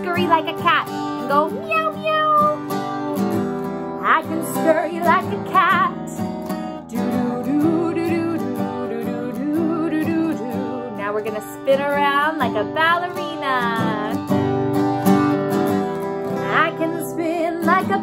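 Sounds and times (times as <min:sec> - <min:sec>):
woman singing: 0:00.0 - 0:03.0, 0:04.0 - 0:14.4, 0:16.3 - 0:18.0
acoustic guitar strumming: 0:00.0 - 0:18.0.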